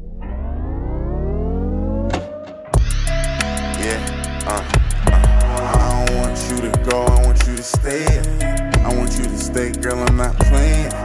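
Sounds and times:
synthesizer riser: 0.0 - 11.0
deep bass swell: 2.8 - 7.5
drill hip-hop beat: 2.8 - 11.0.

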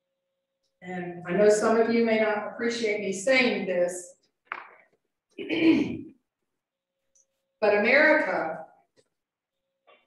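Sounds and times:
woman clearing her throat: 5.4 - 6.2.

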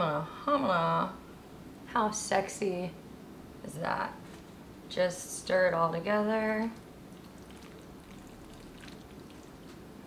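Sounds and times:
chopsticks stirring wet noodles: 6.8 - 9.8.

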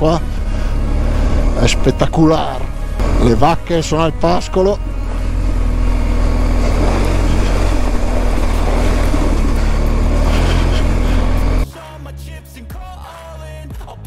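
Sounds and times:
motorcycle engine running: 0.0 - 11.7
wind and road noise: 0.0 - 11.7
music: 0.0 - 14.0.

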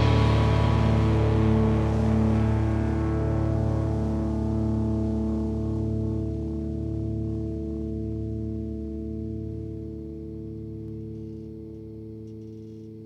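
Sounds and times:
bass guitar: 0.0 - 13.0
distorted electric guitar chord: 0.0 - 13.0.

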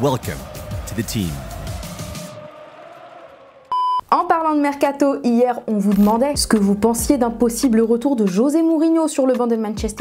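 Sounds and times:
loud electronic beep: 3.7 - 4.1.

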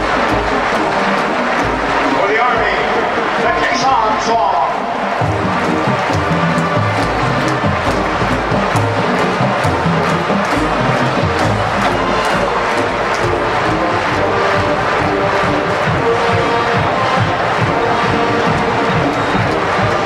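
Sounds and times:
brass chords: 0.0 - 20.0
steady drum beat: 0.0 - 20.0.

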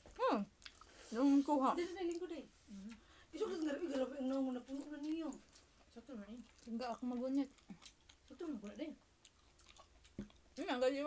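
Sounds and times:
wet chewing clicks: 0.6 - 1.0, 2.9 - 10.6.

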